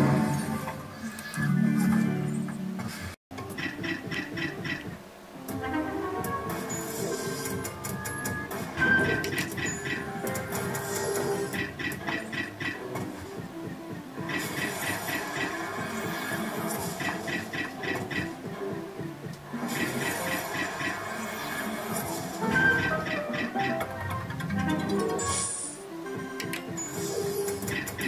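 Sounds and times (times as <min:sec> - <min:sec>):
slot machine electronic music: 0:05.6 - 0:18.6, 0:19.5 - 0:28.0.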